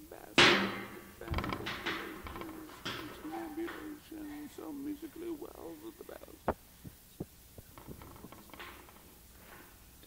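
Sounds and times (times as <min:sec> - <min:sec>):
dull thumps: 0:00.0 - 0:04.7, 0:06.4 - 0:09.9
faint low hum: 0:00.0 - 0:10.0.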